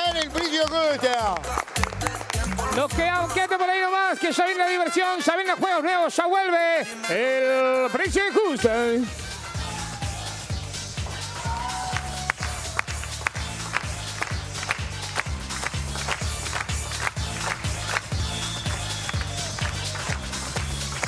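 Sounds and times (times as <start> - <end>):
upbeat game show music: 0.0 - 21.0.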